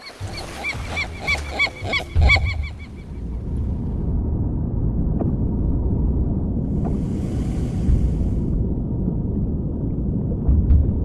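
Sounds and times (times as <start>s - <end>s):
seagulls squawking: 0.0s - 3.2s
low rumble: 1.9s - 11.0s.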